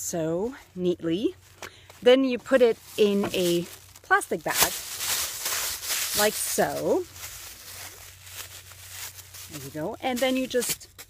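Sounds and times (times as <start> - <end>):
plastic bag rustling: 1.2 - 11.0.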